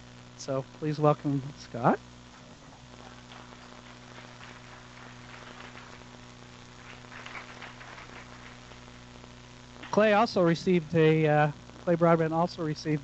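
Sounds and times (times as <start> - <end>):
steady electrical hum: 0.0 - 13.0
faint audience applause: 2.4 - 9.0.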